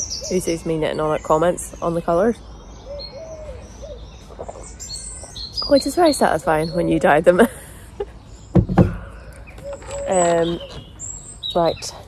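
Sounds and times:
small birds chirping: 0.0 - 12.0
pigeon cooing: 2.8 - 5.4, 9.0 - 10.8.

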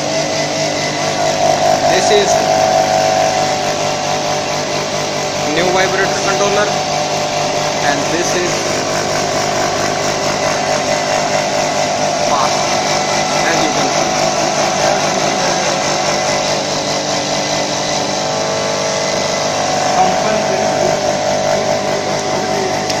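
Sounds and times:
bowl feeders buzzing: 0.0 - 23.0
constant hum: 0.0 - 23.0
factory noise: 0.0 - 23.0.

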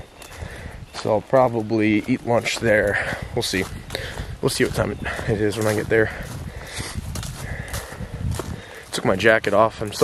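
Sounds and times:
footsteps on leafy dirt trail: 0.0 - 10.0.

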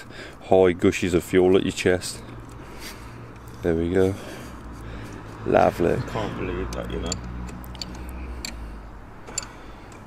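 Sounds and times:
light clicks and taps: 6.7 - 8.6.

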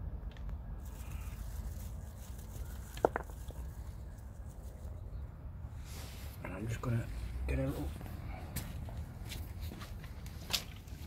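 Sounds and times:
soil crumbling and rustling: 0.8 - 4.0.

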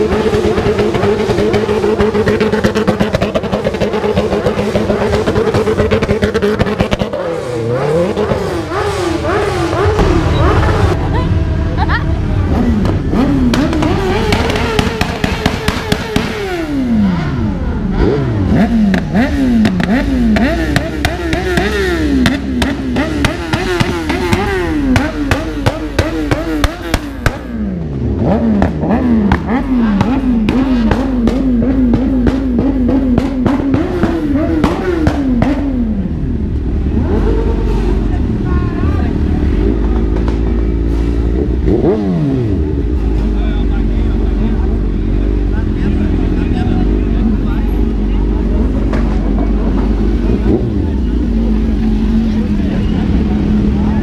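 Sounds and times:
motorcycle engine revving: 0.0 - 54.0.

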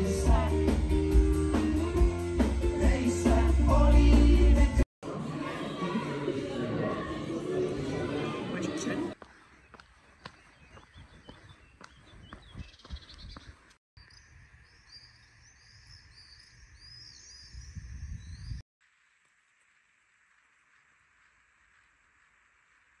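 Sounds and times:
birds chirping: 7.6 - 18.6.

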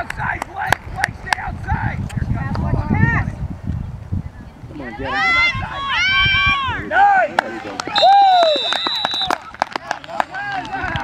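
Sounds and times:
spectators shouting: 4.9 - 11.0
referee's whistle blast: 7.9 - 9.4.

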